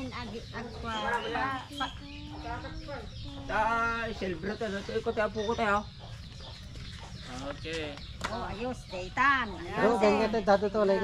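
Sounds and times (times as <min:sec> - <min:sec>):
chickens clucking: 0:00.0 - 0:11.0
people's voices: 0:00.0 - 0:11.0.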